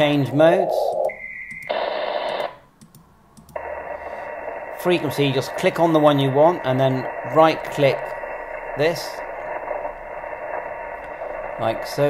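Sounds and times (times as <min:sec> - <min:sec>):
muffled radio static hiss: 0:00.0 - 0:02.7, 0:03.6 - 0:12.0.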